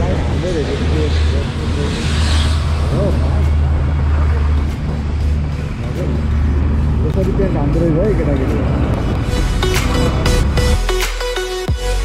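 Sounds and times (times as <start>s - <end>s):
motorcycle engine drone: 0.0s - 11.0s.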